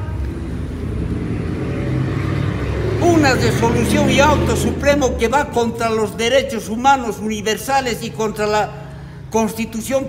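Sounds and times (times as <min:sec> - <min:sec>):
vehicle engine rumbling: 0:00.0 - 0:09.3.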